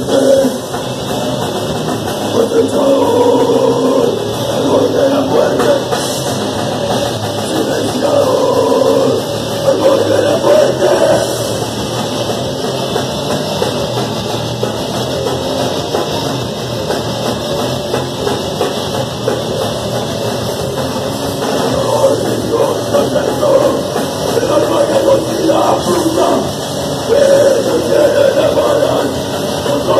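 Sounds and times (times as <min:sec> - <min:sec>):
bass guitar: 0:00.0 - 0:29.9
distorted electric guitar: 0:00.0 - 0:29.9
drum kit pounding: 0:00.0 - 0:29.9.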